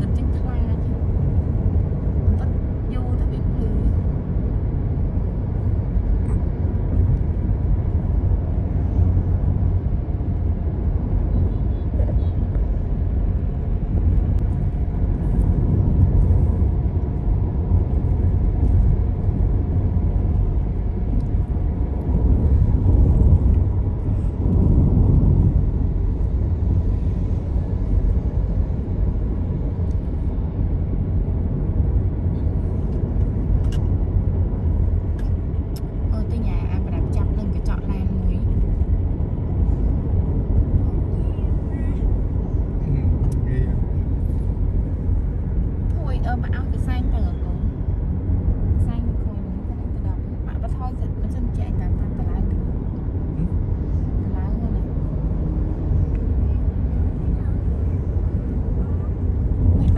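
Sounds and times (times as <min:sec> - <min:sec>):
car interior road rumble: 0:00.0 - 0:59.9.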